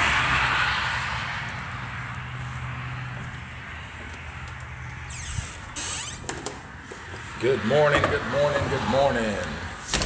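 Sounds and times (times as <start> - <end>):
door creaking open: 4.9 - 6.7.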